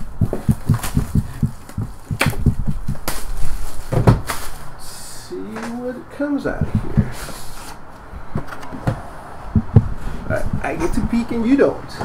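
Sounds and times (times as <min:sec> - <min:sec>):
soft low thumps: 0:00.0 - 0:03.0, 0:06.5 - 0:07.2, 0:08.2 - 0:11.2
sharp clicks: 0:00.2 - 0:02.8
knocks: 0:00.2 - 0:03.0, 0:06.6 - 0:07.2, 0:08.3 - 0:11.2.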